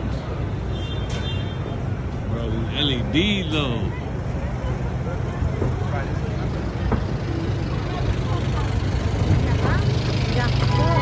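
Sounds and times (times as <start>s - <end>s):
crowd voices: 0.0s - 11.0s
traffic rumble: 0.0s - 11.0s.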